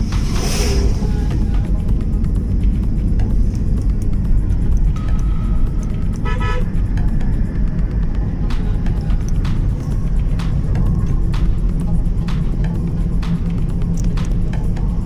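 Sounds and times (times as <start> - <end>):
vehicle driving on paved road: 0.0 - 15.0
vehicle horn: 6.1 - 6.9.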